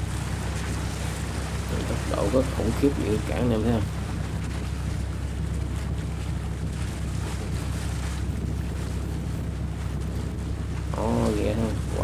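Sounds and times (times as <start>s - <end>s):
boat engine running: 0.0s - 12.0s
sea and surf: 0.0s - 12.0s
wind rumble on microphone: 0.0s - 12.0s.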